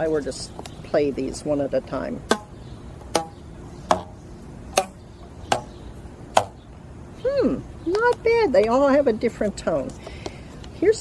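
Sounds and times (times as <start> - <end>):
rubber bands plucked twanging: 2.3 - 6.6.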